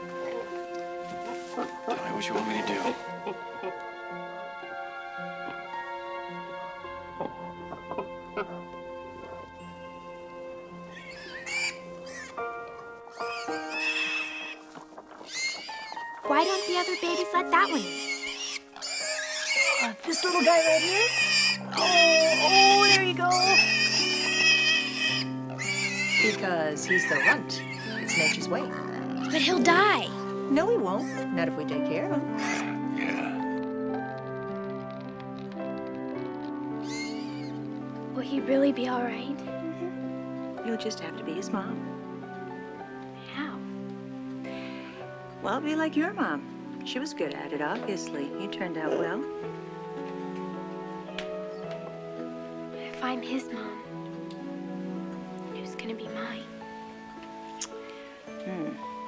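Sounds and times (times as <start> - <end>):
soft background music: 0.0 - 59.0
farm animal squeals: 10.9 - 12.5, 13.1 - 14.6, 15.2 - 29.4, 32.3 - 33.6, 36.7 - 37.7.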